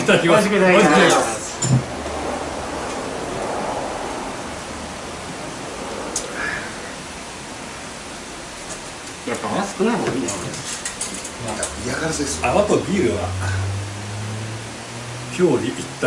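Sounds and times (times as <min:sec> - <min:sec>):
steady even hiss: 0:00.0 - 0:16.0.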